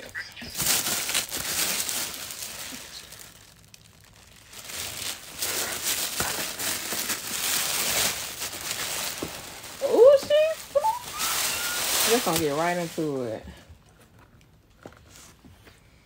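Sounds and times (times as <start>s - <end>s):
plastic bag crinkling: 0.0s - 13.4s.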